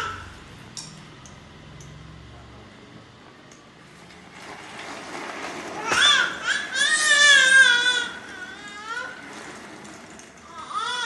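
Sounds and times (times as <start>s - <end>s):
toddler shrieking: 5.8s - 9.2s.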